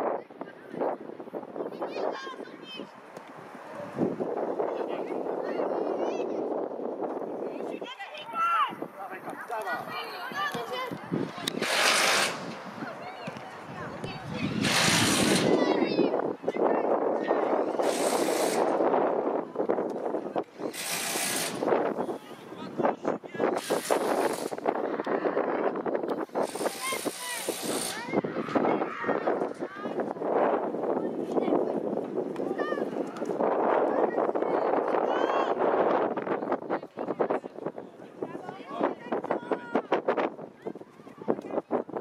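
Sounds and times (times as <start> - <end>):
babble of voices: 21.6 - 42.0
children shouting: 26.7 - 30.0.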